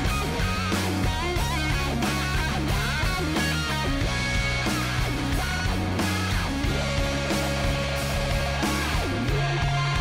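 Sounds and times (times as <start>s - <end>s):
drums: 0.0s - 10.0s
electric guitar: 0.0s - 10.0s.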